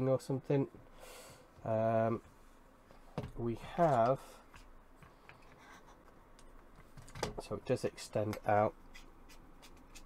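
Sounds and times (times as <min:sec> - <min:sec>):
hands rubbing plastic tripod: 0:08.8 - 0:10.0.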